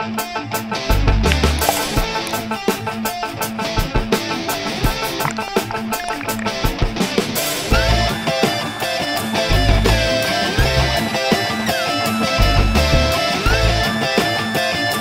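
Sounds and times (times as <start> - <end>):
guitar music over a steady beat: 0.0 - 15.0.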